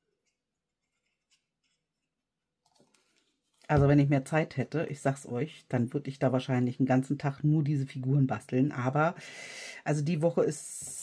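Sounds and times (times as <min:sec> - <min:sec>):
paper scratching: 0:00.1 - 0:02.2.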